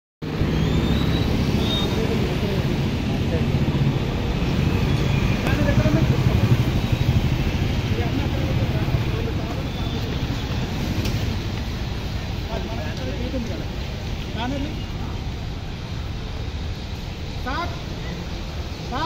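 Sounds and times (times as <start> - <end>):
road traffic rumble: 0.2 - 19.0
people talking: 1.6 - 4.3, 5.4 - 6.9, 7.8 - 10.6, 12.4 - 15.4.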